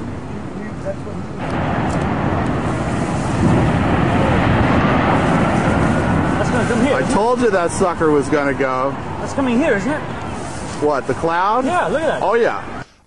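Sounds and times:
building collapsing rumble: 1.4 - 11.6
faint voices: 3.8 - 12.8.

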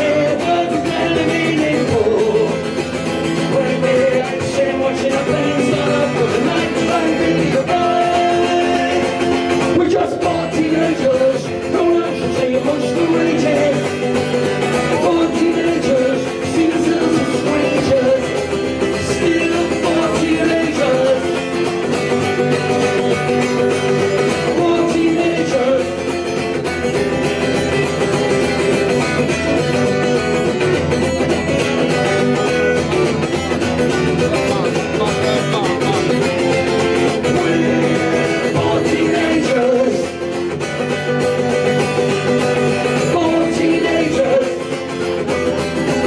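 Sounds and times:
man singing: 0.0 - 26.6, 33.5 - 41.7, 42.3 - 46.0
acoustic guitar strummed: 0.0 - 46.0.

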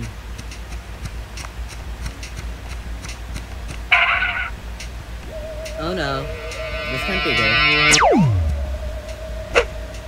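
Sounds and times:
faint regular ticking: 0.0 - 5.8
low hum: 0.0 - 10.0
wavering tone: 5.2 - 10.0
short cartoon sound effect: 6.3 - 9.0.

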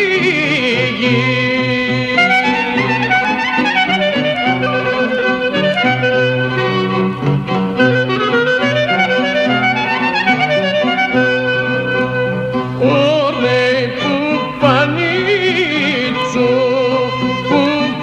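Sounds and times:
clarinet playing gliding melody: 2.0 - 12.8.

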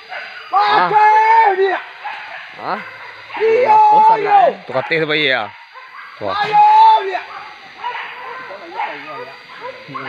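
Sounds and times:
dogs barking and yelping: 0.0 - 0.9, 1.7 - 10.0
men shouting in distance: 0.0 - 10.0.

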